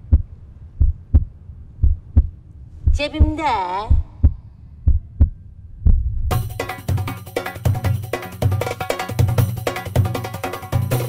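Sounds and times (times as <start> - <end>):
heartbeat-like low thumps: 0.0 - 6.6
film music with percussion beat: 6.3 - 11.0.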